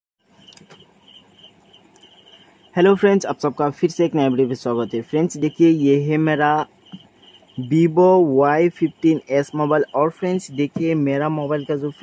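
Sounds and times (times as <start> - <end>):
cricket chirping: 0.3 - 12.0.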